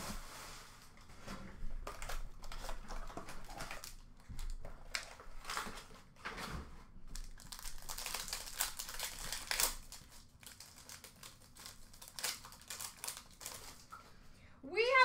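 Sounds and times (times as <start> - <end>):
wrapper crinkling: 1.8 - 5.9, 7.1 - 14.0.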